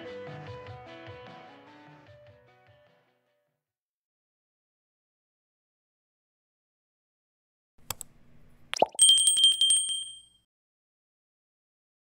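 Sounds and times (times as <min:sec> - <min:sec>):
mouse click: 0:07.8 - 0:08.2
notification bell trill: 0:08.8 - 0:10.4.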